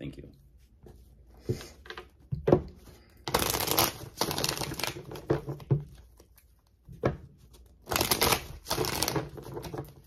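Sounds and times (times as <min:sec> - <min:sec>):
cards being shuffled: 0:03.0 - 0:06.8, 0:07.4 - 0:10.0.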